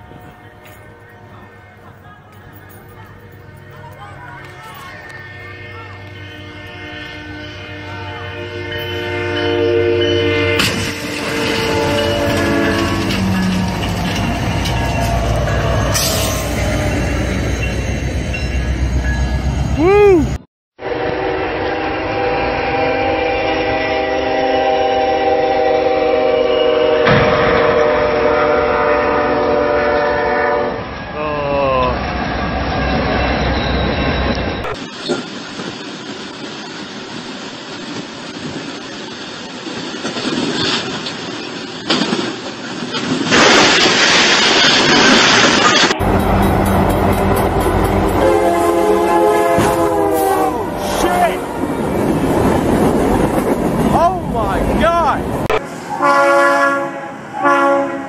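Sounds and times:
train rumble: 0:00.0 - 0:58.0
locomotive horn blasts: 0:04.3 - 0:13.6, 0:20.8 - 0:30.9, 0:45.8 - 0:51.4, 0:55.5 - 0:58.0.

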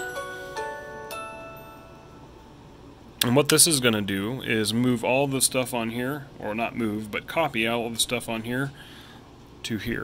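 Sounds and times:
computer chime: 0:00.0 - 0:02.6.

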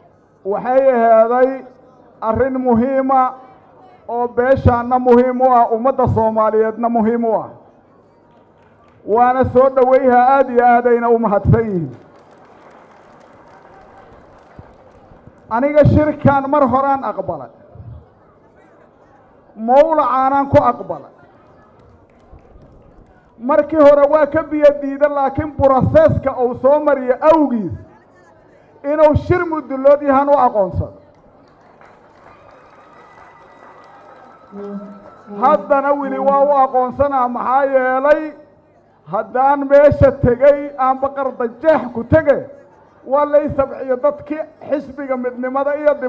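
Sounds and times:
low hall noise: 0:00.0 - 0:46.0
man speaking over microphone: 0:00.4 - 0:03.4, 0:04.1 - 0:07.6, 0:09.1 - 0:12.0, 0:15.5 - 0:17.6, 0:19.6 - 0:21.1, 0:23.4 - 0:27.9, 0:28.8 - 0:31.0, 0:34.6 - 0:46.0.

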